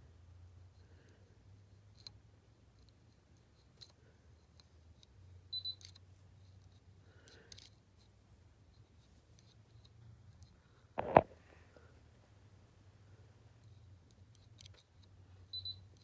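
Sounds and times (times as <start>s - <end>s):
hook tool clicking on needles: 1.9s - 8.1s, 13.6s - 15.2s.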